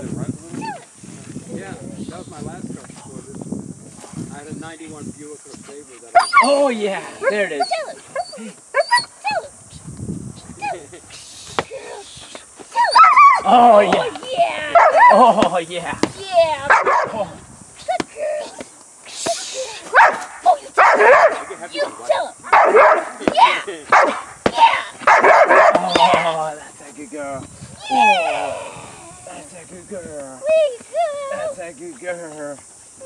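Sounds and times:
dog barking: 14.8s - 15.2s, 16.7s - 17.2s, 19.9s - 21.6s, 22.5s - 23.2s, 23.9s - 24.3s, 25.0s - 26.2s.

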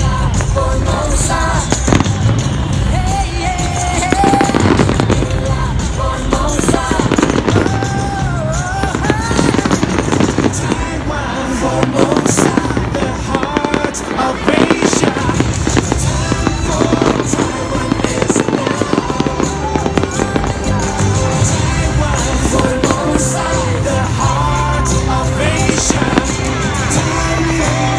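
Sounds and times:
fireworks cracks and booms: 0.0s - 27.9s
music playing: 0.0s - 27.9s.

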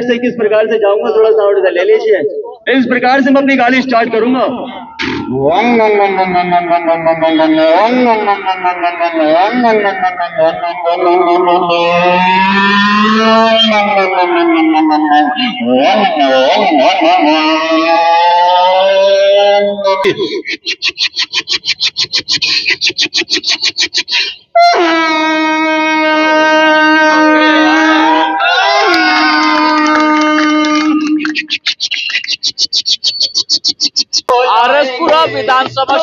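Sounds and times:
man imitating a motorcycle engine: 4.4s - 20.2s
crowd of men cheering: 26.1s - 31.4s.

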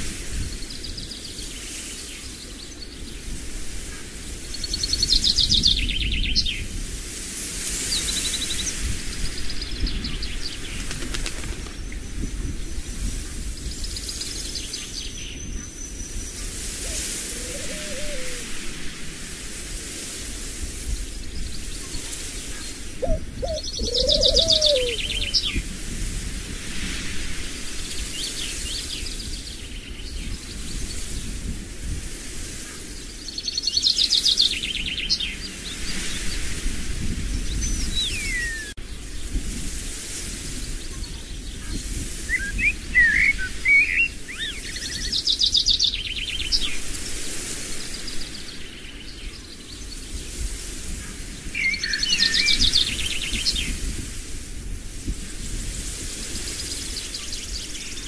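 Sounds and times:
thin bird whistles: 16.8s - 18.4s, 23.0s - 25.5s, 37.9s - 38.8s, 42.3s - 45.1s
birds singing trilled phrases: 16.9s - 18.4s, 23.0s - 25.6s, 37.6s - 38.8s, 42.3s - 45.8s.

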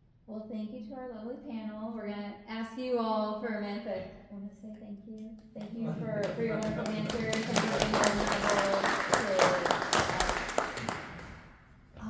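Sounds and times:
small audience clapping: 5.4s - 11.6s.

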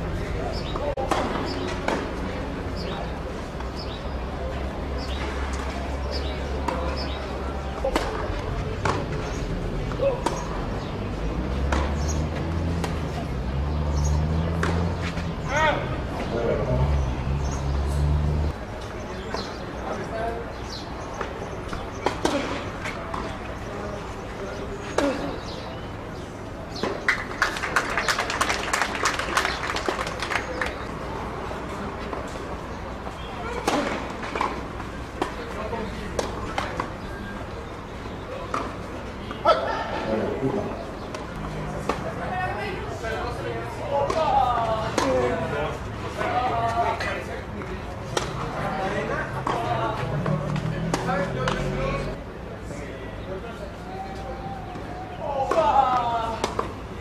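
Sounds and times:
indistinct voices: 0.0s - 57.0s
racket hitting tennis ball: 0.6s - 2.3s, 11.5s - 13.2s, 14.5s - 15.3s, 33.4s - 37.0s, 48.1s - 48.4s.

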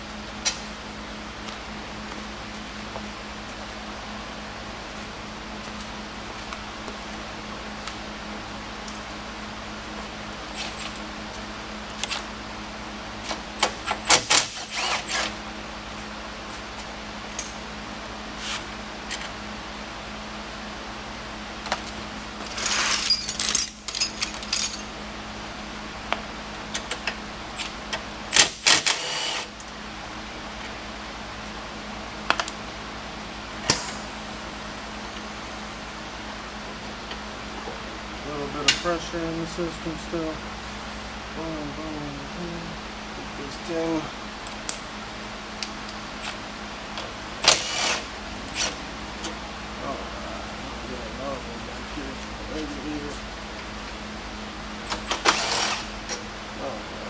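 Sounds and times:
steady background hum: 0.0s - 57.0s
metal tools clinking and rattling: 22.4s - 24.9s.

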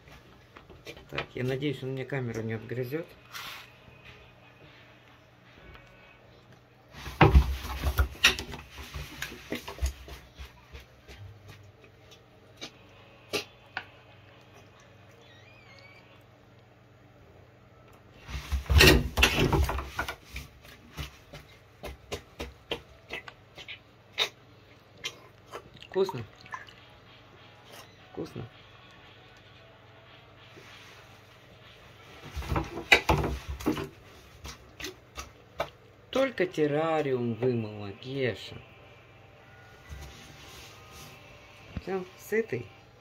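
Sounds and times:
crocodile crunching food: 22.2s - 26.1s.

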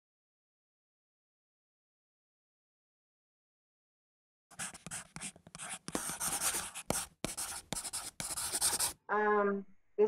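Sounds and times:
scratchy scribbling strokes: 4.5s - 9.0s.

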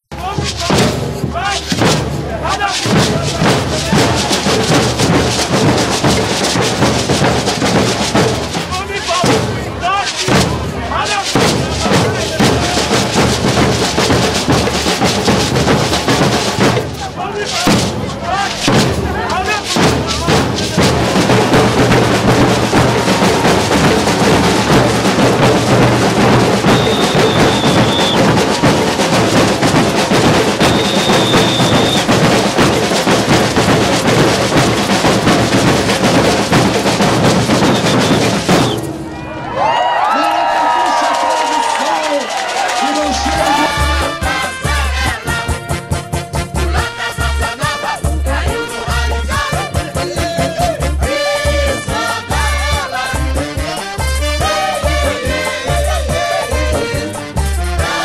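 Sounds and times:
bass drums and snare drums: 0.0s - 58.0s
voices over drumming: 0.1s - 58.0s
long high whistle notes: 26.6s - 28.3s, 30.6s - 32.1s.

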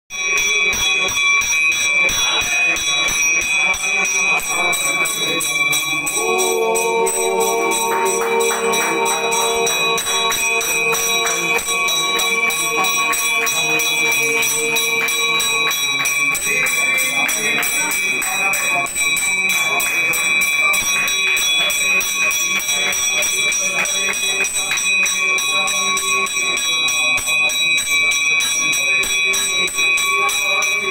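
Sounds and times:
temple bells ringing: 0.1s - 30.9s.

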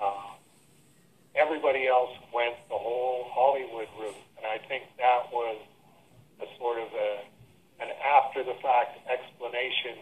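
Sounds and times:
man talking over telephone: 0.0s - 0.4s, 1.4s - 5.7s, 6.4s - 10.0s.

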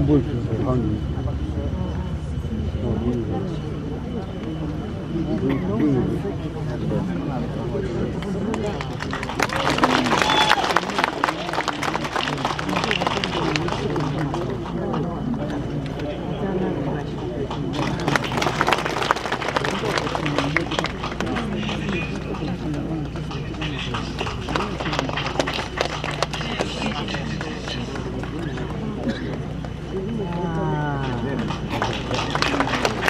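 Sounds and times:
murmur of crowd voices: 0.0s - 33.0s
people talking over one another: 0.0s - 33.0s
steady low hum: 0.0s - 33.0s.

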